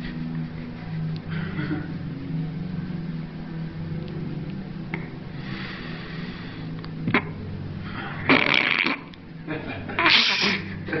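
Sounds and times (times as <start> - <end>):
person blowing into cupped hands: 8.1 - 9.2, 10.0 - 10.8.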